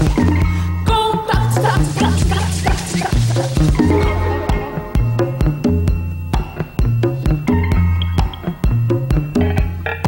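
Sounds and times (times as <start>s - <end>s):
drums: 0.0s - 10.0s
woman singing: 0.8s - 3.2s
maracas shaking: 1.4s - 5.4s
bass line: 3.7s - 8.0s.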